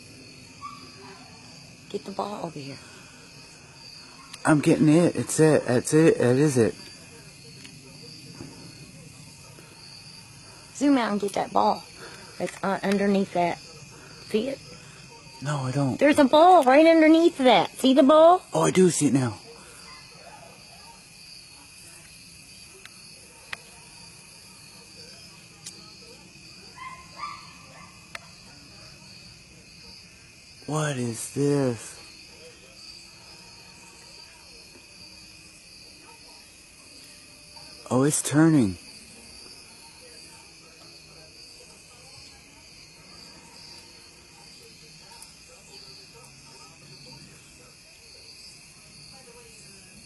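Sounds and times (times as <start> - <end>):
crickets chirring: 0.0 - 50.0
high-pitched insect chorus: 0.0 - 50.0.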